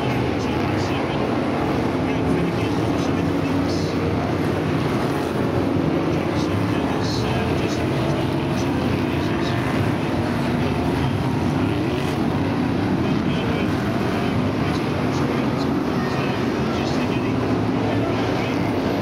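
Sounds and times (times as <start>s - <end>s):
race car engines roaring: 0.0s - 19.0s.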